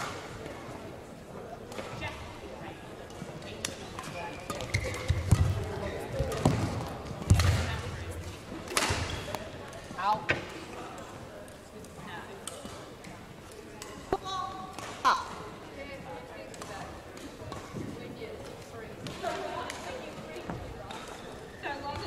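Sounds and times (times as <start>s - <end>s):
shoe squeaks on court floor: 4.1s - 5.3s.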